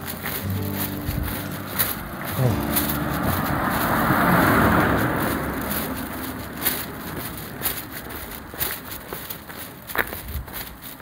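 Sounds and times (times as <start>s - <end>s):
car driving past: 0.2s - 7.7s.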